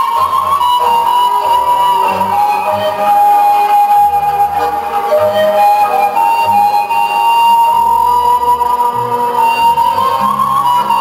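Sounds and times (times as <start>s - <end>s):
folk dance music: 0.0s - 11.0s.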